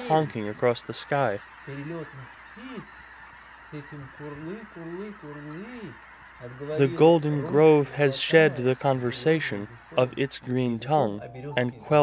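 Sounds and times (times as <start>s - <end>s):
geese honking: 0.0s - 12.0s
steady hiss: 0.0s - 12.0s.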